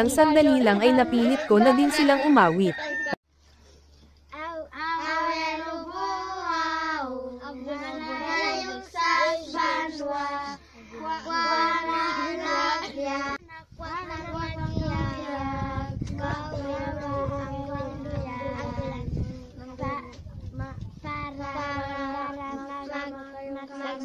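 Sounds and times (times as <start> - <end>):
girls singing in unison: 4.8 - 19.3.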